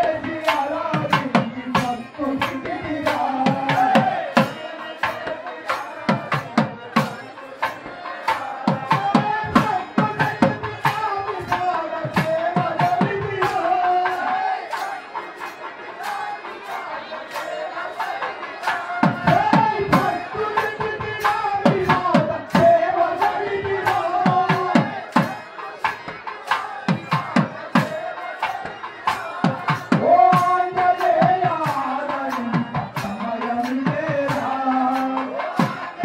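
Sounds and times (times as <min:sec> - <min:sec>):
crowd noise: 0:00.0 - 0:36.0
drums beaten in fast rhythm: 0:00.0 - 0:36.0.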